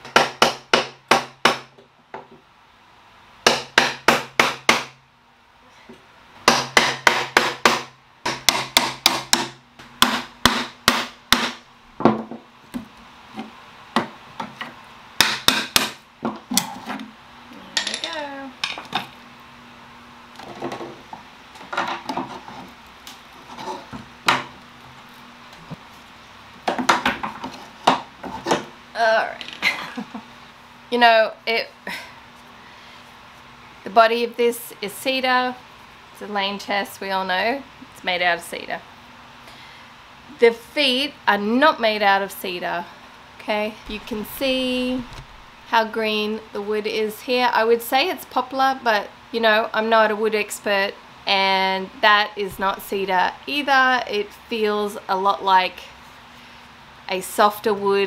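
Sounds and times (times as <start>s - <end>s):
hammer striking a chisel: 0.0s - 1.7s, 3.5s - 5.0s, 6.5s - 11.6s, 15.2s - 16.0s.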